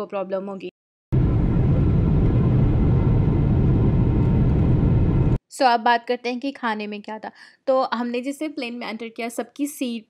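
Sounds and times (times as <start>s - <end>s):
jet engine cabin rumble: 1.2s - 5.4s.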